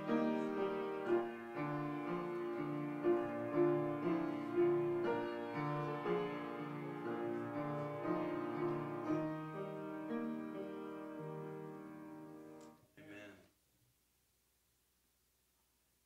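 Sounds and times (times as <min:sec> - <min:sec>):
slow piano music: 0:00.0 - 0:12.8.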